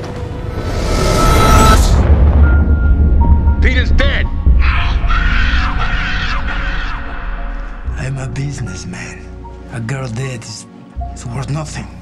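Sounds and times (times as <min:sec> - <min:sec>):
low throbbing drone: 0:00.0 - 0:08.5
wavering higher tone: 0:00.4 - 0:03.0.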